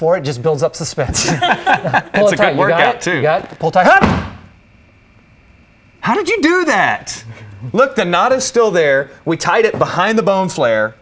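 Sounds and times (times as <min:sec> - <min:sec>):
dull thump: 0:04.0 - 0:04.5.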